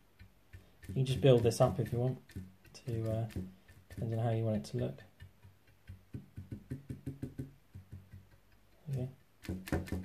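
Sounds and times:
paintbrush tapping on metal: 0:00.0 - 0:10.0.

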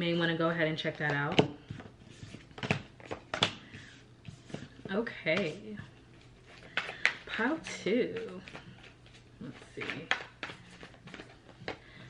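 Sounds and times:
cards rustling while shuffled: 0:01.6 - 0:12.0.

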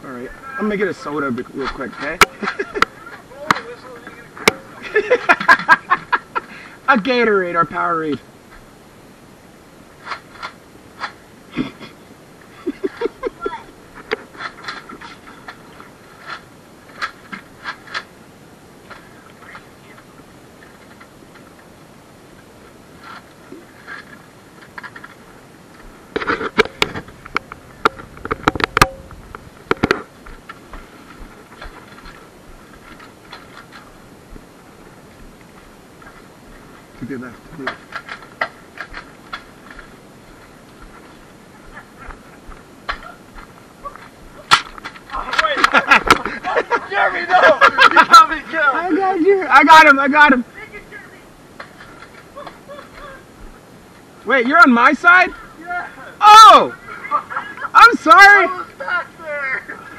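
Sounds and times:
laugh-like voice burst: 0:02.3 - 0:03.2, 0:04.8 - 0:06.7, 0:11.5 - 0:14.1, 0:45.4 - 0:48.4, 0:52.3 - 0:53.3
footsteps: 0:22.3 - 0:46.8.

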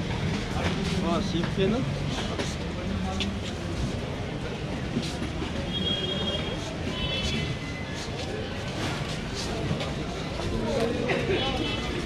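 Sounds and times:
traffic rumble: 0:00.0 - 0:12.0
voices of passers-by: 0:00.0 - 0:12.0.

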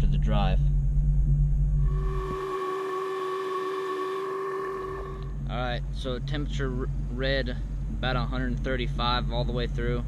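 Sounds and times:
steady electronic tone: 0:01.2 - 0:05.6.

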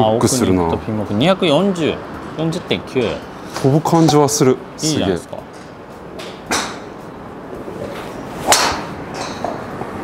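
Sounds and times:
golf driver striking ball: 0:08.4 - 0:09.4.

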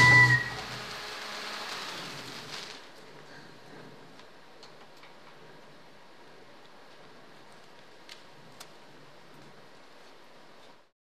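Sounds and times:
faint background hiss: 0:00.0 - 0:10.9.

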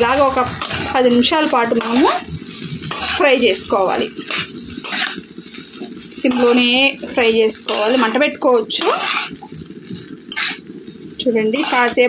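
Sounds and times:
metal spatula scraping a pan: 0:00.0 - 0:09.5, 0:10.3 - 0:10.7, 0:11.4 - 0:12.0.

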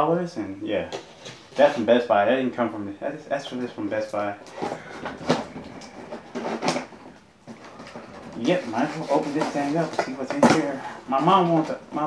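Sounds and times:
hands rustling cardboard: 0:04.5 - 0:11.8.

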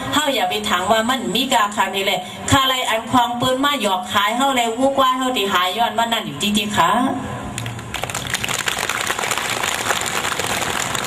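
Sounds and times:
audience applauding: 0:07.9 - 0:11.0.

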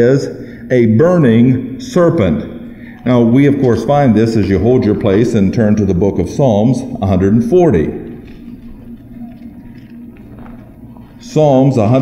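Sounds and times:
low hum: 0:00.0 - 0:12.0
pages rustling: 0:08.2 - 0:11.2.

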